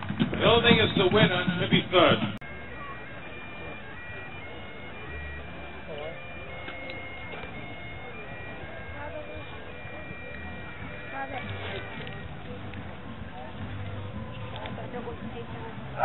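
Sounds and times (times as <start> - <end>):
crowd chatter: 0.0 - 16.0
bagpipes playing: 2.0 - 12.8.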